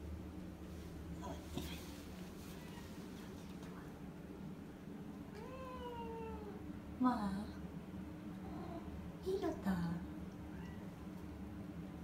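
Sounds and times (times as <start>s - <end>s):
cat meowing: 5.3s - 6.6s, 10.5s - 10.9s.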